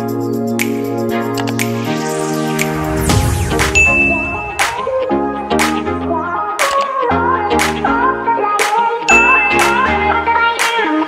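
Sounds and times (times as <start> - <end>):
background music: 0.0 - 11.0
bright ding: 3.8 - 4.7, 9.1 - 9.8.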